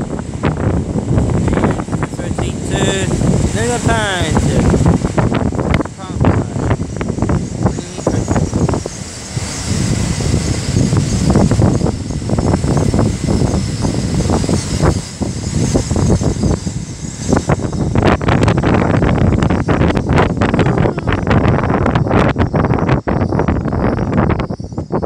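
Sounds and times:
train rumbling along track: 0.0s - 25.0s
wind buffeting microphone: 0.0s - 25.0s.

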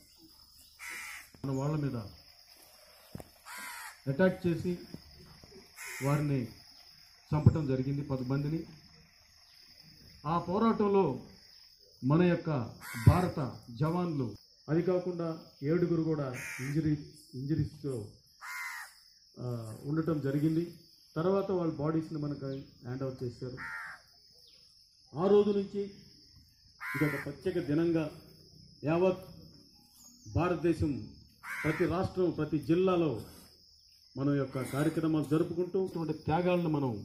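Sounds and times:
crow cawing: 0.8s - 1.4s, 3.4s - 4.1s, 5.8s - 6.3s, 12.8s - 13.4s, 16.3s - 16.8s, 18.4s - 19.0s, 23.6s - 24.1s, 26.8s - 27.4s, 31.4s - 32.1s.

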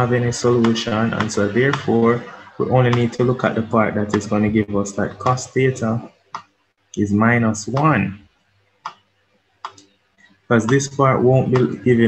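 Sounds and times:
stylus tapping tablet screen: 0.0s - 6.6s, 7.7s - 12.0s.

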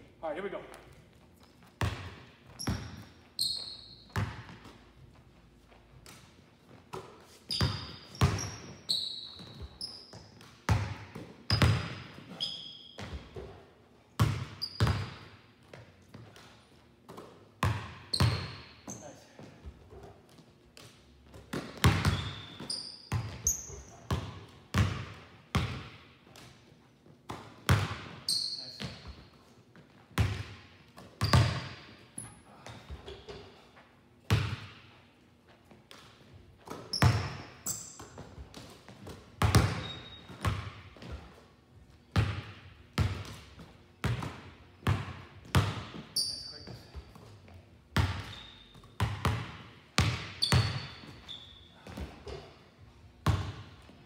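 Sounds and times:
sneakers squeaking on court: 0.6s - 26.0s, 27.3s - 34.9s, 35.9s - 41.5s, 42.1s - 53.9s
basketballs bouncing on wooden floor: 0.7s - 5.2s, 6.0s - 13.6s, 14.2s - 26.5s, 27.3s - 29.2s, 29.8s - 33.6s, 34.2s - 35.0s, 35.9s - 41.4s, 42.1s - 52.6s, 53.2s - 54.0s.

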